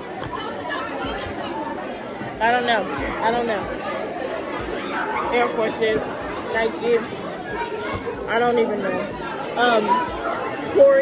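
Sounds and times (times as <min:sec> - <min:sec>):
chatter of many voices: 0:00.0 - 0:11.0.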